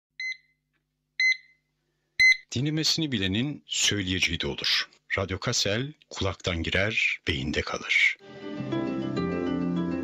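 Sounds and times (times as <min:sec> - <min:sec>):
short electronic beeps: 0:01.2 - 0:01.6, 0:02.2 - 0:02.4.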